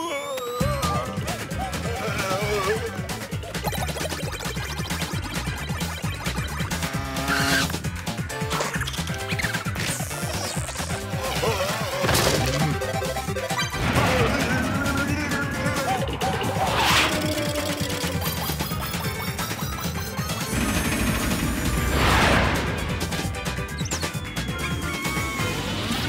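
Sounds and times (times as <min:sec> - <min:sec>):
cartoon music: 0:00.0 - 0:26.0
slapstick sound effects: 0:00.3 - 0:25.4.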